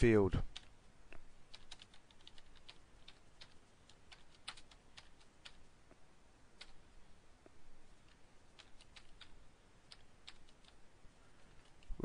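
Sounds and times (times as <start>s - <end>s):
faint keyboard typing: 0.4s - 12.0s.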